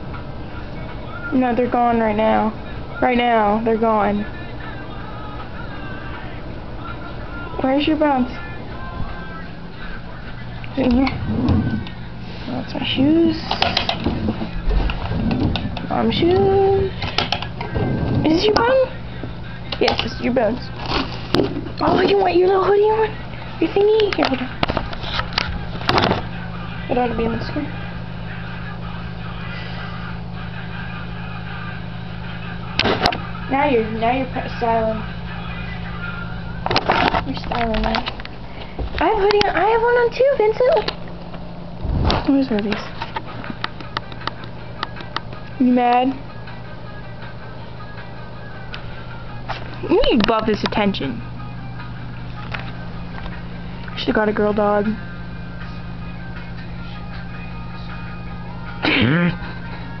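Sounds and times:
background music: 0:00.0 - 0:38.3, 0:42.3 - 1:00.0
air conditioning hum and hiss: 0:00.0 - 1:00.0.

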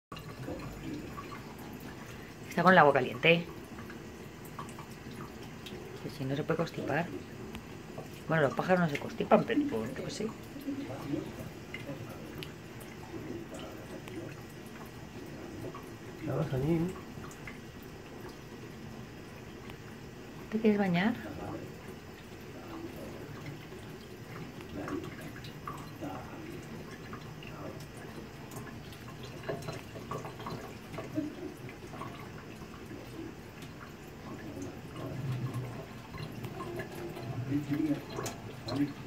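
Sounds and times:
tap water splashing into sink: 0:00.1 - 0:39.0.

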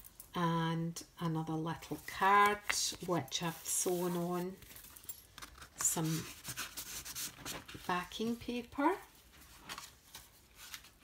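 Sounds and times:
paper page turning: 0:03.9 - 0:07.9, 0:09.3 - 0:11.0.

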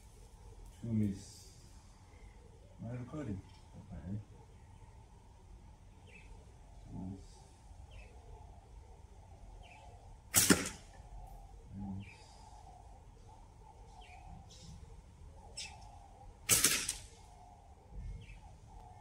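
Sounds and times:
birds chirping faintly: 0:00.0 - 0:19.0
slingshot shots: 0:10.3 - 0:10.9, 0:16.5 - 0:17.2.

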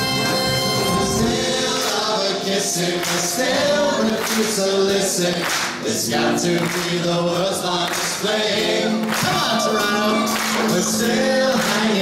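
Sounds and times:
big band music: 0:00.0 - 0:12.0
person singing: 0:00.9 - 0:12.0.

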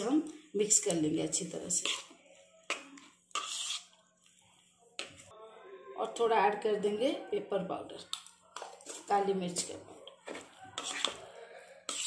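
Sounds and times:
metal spoon scraping in a bowl: 0:01.6 - 0:02.2, 0:03.0 - 0:04.0, 0:08.6 - 0:10.1, 0:10.7 - 0:12.0.

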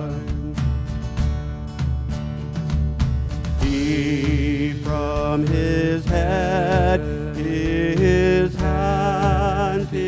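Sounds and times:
worship band playing hymn: 0:00.0 - 0:10.0
person singing long notes: 0:03.6 - 0:10.0.

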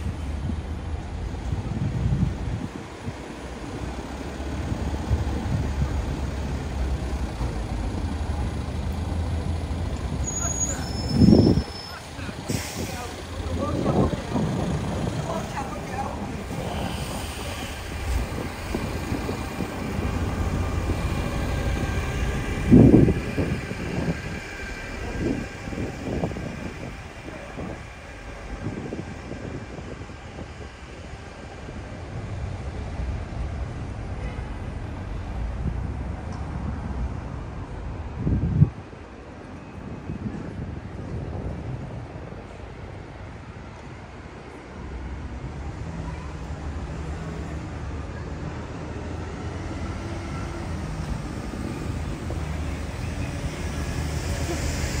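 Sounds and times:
heavy traffic engine rumble: 0:00.0 - 0:55.0.

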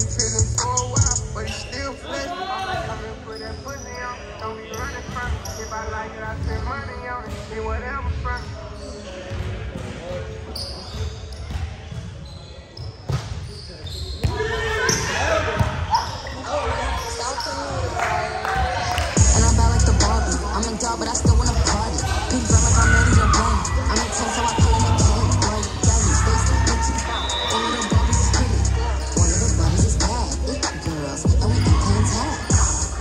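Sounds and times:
players calling and chattering: 0:00.0 - 0:33.0.

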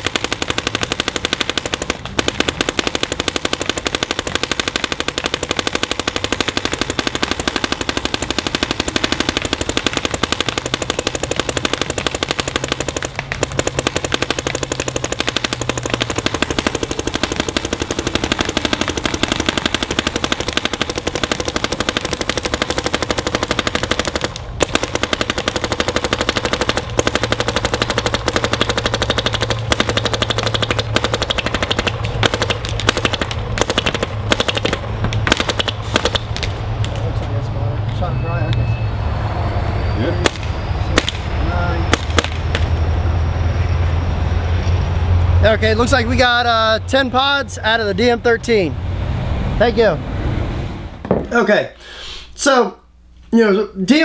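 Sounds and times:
paintball marker firing: 0:00.0 - 0:37.0, 0:40.2 - 0:41.3, 0:41.9 - 0:42.8.

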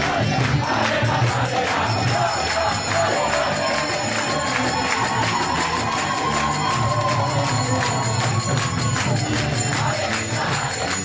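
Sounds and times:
crowd singing: 0:00.0 - 0:11.0
hand cymbals struck rhythmically: 0:00.0 - 0:11.0
people clapping: 0:00.0 - 0:11.0.

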